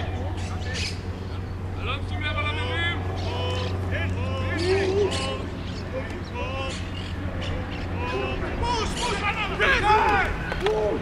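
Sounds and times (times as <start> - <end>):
players shouting short calls: 0.0 - 11.0.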